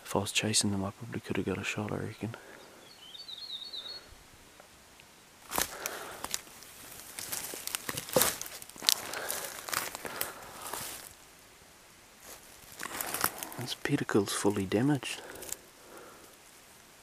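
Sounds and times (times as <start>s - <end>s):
footsteps on dry leaves: 5.4s - 11.2s, 12.2s - 13.9s.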